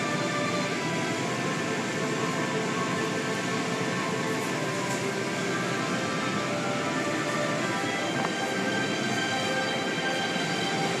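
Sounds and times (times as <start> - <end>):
machine whines: 0.0 - 11.0.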